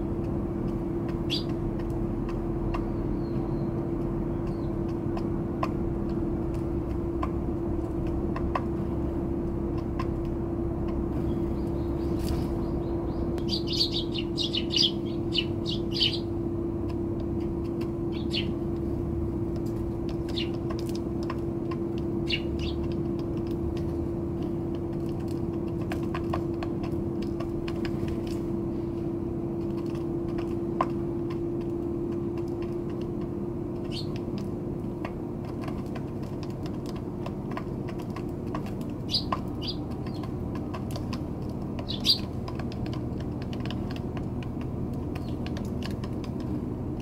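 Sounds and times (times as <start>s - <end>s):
sparrows chirping: 0.0s - 5.3s, 11.1s - 27.5s, 33.6s - 34.4s, 37.8s - 43.2s, 44.7s - 45.7s
beaks pecking on wood: 0.0s - 47.0s
low background hum: 0.0s - 47.0s
bird chirp: 1.1s - 1.6s, 2.7s - 5.0s, 11.2s - 16.4s, 18.0s - 18.7s, 20.1s - 20.8s, 22.2s - 23.0s, 33.8s - 34.2s, 39.0s - 40.4s, 41.8s - 42.4s, 45.1s - 45.5s.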